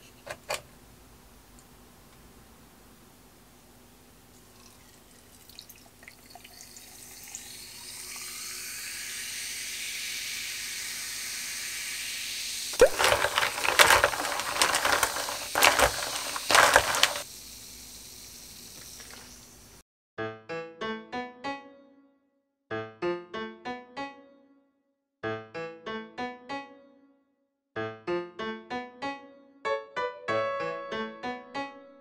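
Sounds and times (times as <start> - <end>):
carbonated water fizzing over ice: 4.3 - 17.3, 18.6 - 19.6
liquid sloshing in a glass: 12.8 - 17.2.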